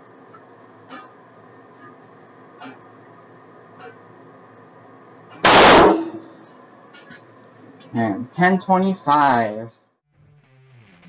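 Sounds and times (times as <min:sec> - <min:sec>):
pistol shot: 0:05.4 - 0:06.3.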